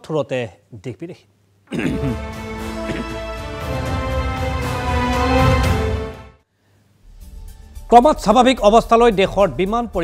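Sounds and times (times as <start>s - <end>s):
news theme music: 1.8s - 6.4s, 7.1s - 10.0s.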